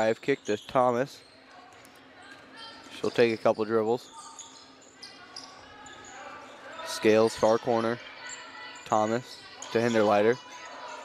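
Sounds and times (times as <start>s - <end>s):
low murmur of hall: 0.0s - 11.0s.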